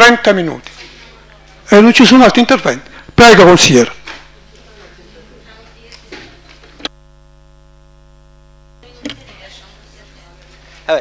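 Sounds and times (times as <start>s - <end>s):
electrical mains hum: 0.0s - 11.0s
room noise: 0.0s - 11.0s.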